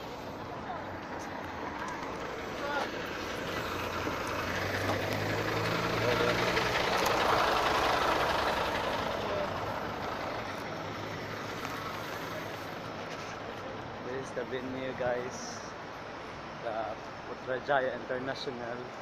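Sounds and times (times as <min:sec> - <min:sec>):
diesel bus engine running: 0:00.0 - 0:13.0.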